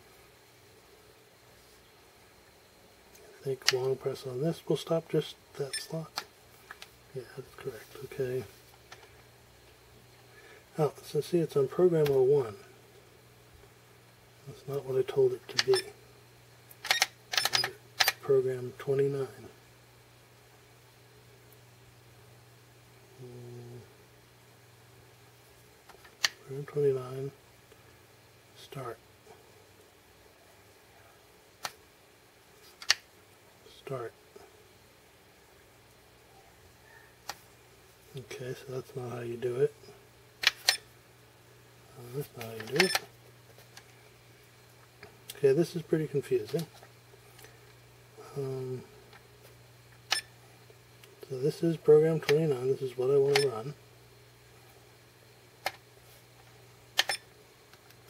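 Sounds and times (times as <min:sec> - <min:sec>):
faint electrical hum: 0:00.0 - 0:58.0.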